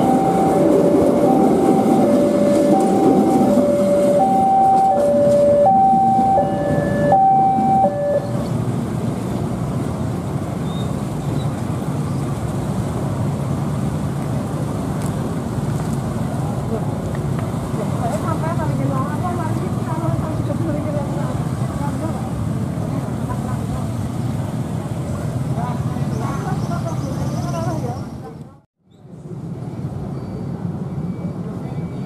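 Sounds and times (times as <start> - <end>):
vehicle engines rumbling: 0.0 - 32.0
people's voices: 16.0 - 29.9.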